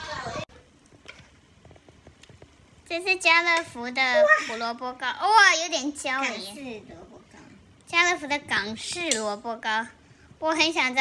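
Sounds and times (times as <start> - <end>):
voices: 0.0 - 0.7, 2.9 - 11.0
metal tongs clicking: 8.9 - 9.4.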